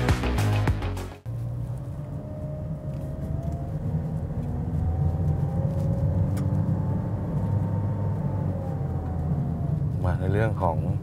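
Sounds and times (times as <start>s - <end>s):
car tyre and engine rumble: 1.2s - 11.0s.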